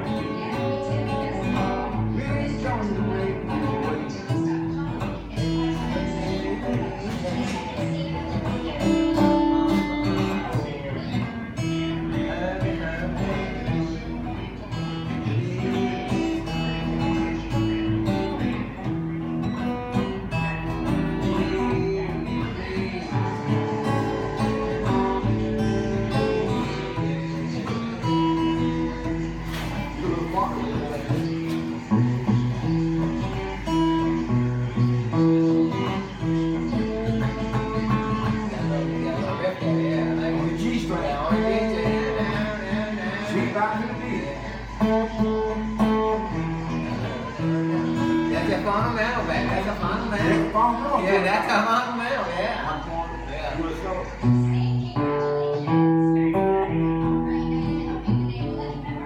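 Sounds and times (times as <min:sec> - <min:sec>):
acoustic guitar playing blues: 0:00.0 - 0:59.0.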